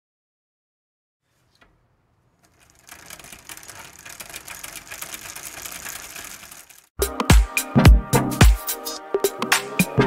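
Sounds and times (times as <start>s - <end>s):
small machine clicking and rattling: 1.5s - 7.0s.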